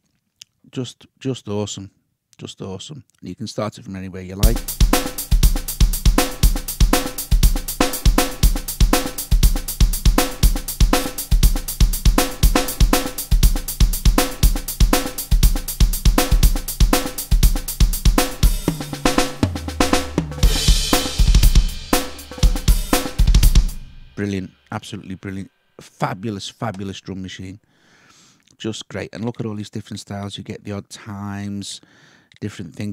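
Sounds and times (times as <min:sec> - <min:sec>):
rock drum beat: 0:04.4 - 0:24.2
cymbal wash: 0:20.3 - 0:24.2.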